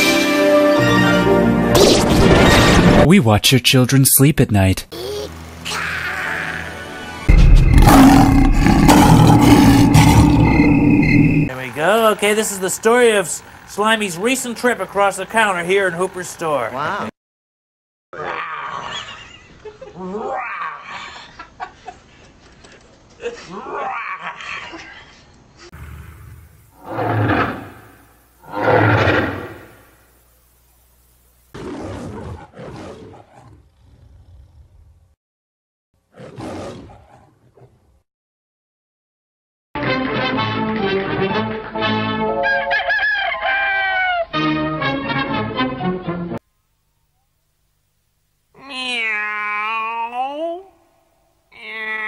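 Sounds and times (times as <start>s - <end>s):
lion roaring: 7.3s - 11.5s, 25.8s - 29.8s
man laughing: 19.1s - 20.2s, 21.1s - 22.3s, 23.2s - 25.0s.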